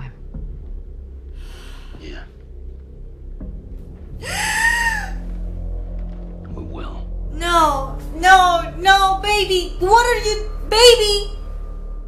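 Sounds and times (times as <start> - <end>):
woman squealing: 4.2 - 5.2.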